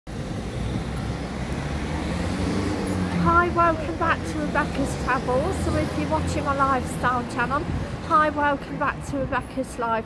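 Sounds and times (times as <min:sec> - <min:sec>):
low traffic rumble: 0:00.1 - 0:10.0.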